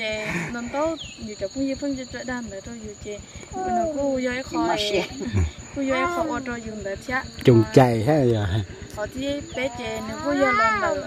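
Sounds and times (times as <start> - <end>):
women talking: 0.0 - 8.0, 8.9 - 11.0
high-pitched insect drone: 0.0 - 11.0.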